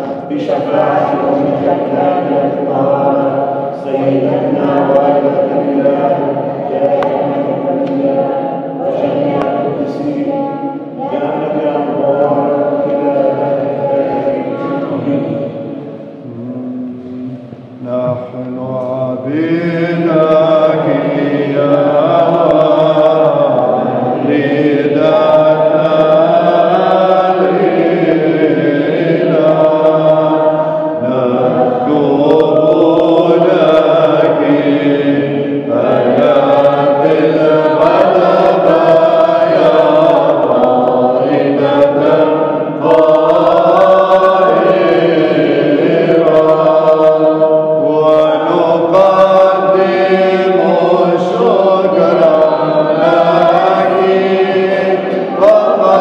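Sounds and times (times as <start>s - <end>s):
voices singing liturgical chant: 0.0s - 56.0s.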